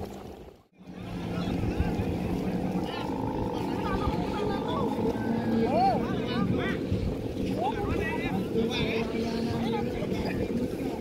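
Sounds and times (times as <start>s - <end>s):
kite hummers droning: 0.0s - 11.0s
crowd voices: 0.8s - 11.0s
gliding calls: 0.9s - 9.5s.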